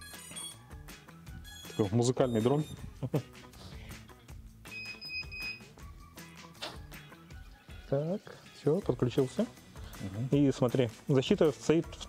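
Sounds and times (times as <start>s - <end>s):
high beep: 1.4s - 2.8s, 4.7s - 5.7s.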